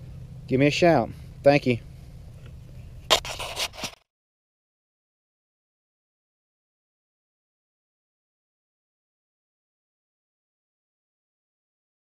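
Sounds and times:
low steady hum: 0:00.0 - 0:04.0
scratchy rustling scrape: 0:03.1 - 0:04.0.

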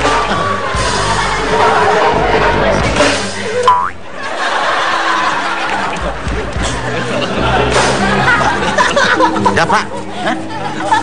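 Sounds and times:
background music: 0:00.0 - 0:11.0
cartoon pitched sweep: 0:03.6 - 0:04.0.

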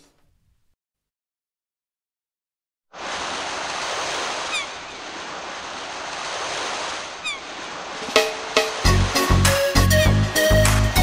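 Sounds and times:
ocean waves breaking: 0:02.9 - 0:10.0.

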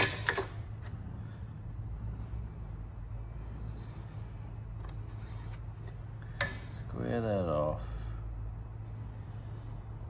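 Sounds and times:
steady low hum: 0:00.0 - 0:10.0
marker pen drawing on metal: 0:03.6 - 0:04.4, 0:05.0 - 0:06.0, 0:08.9 - 0:09.8.

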